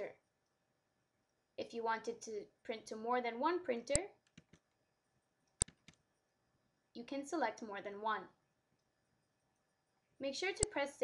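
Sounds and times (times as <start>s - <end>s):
computer mouse button clicks: 10.6s - 10.8s.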